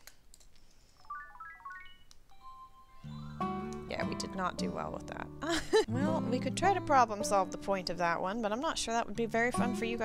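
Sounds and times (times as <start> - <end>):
rising electronic beeps jingle: 1.1 - 4.0.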